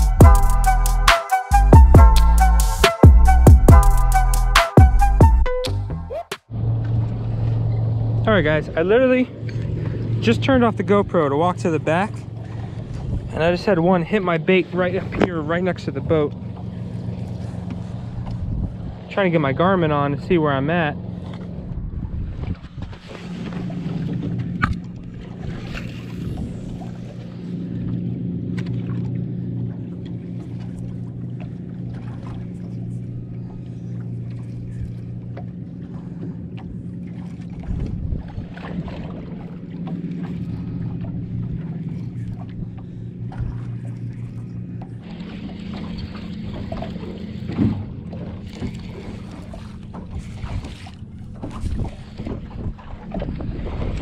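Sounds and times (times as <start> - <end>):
boat motor humming: 0.0 - 54.0.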